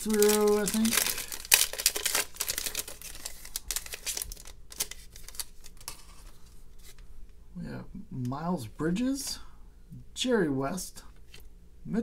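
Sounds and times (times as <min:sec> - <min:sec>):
plastic wrapper tearing and crinkling: 0:00.0 - 0:06.3.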